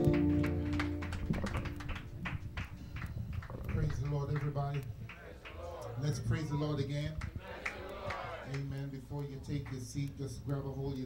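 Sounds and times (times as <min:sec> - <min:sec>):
keyboard holding a chord: 0:00.0 - 0:02.0
congregation voices: 0:07.2 - 0:08.8.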